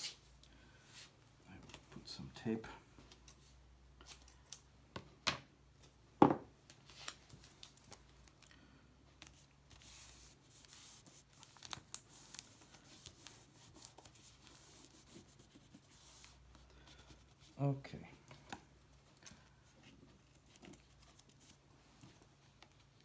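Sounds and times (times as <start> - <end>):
hands rubbing tape: 9.2 - 17.6.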